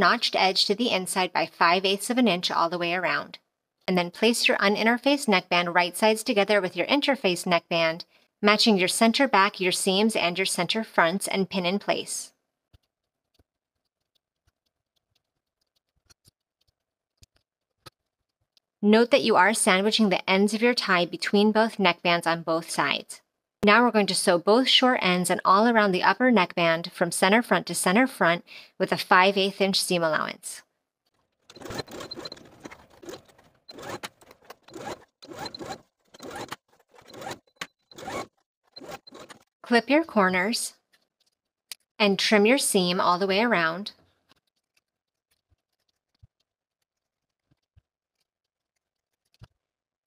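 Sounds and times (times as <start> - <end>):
sewing machine stitching: 31.4 - 39.6.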